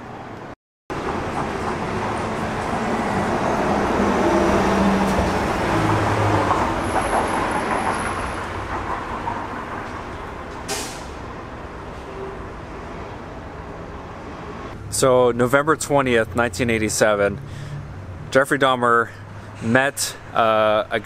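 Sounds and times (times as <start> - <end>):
heavy vehicle driving past: 0.9 - 18.4.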